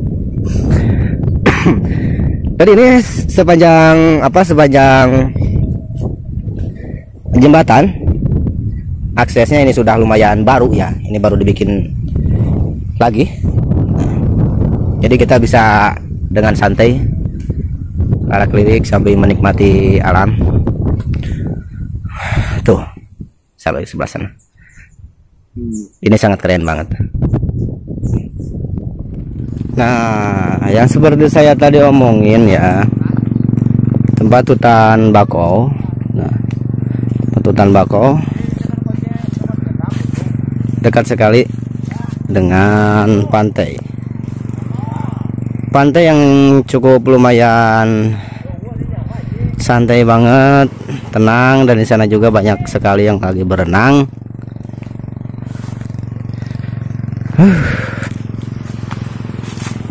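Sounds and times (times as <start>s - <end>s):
low rumble: 0.0s - 23.4s, 27.0s - 47.1s, 47.8s - 59.9s
small engine idling: 0.2s - 22.7s, 28.5s - 59.9s
footsteps on wooden boardwalk: 58.0s - 59.9s.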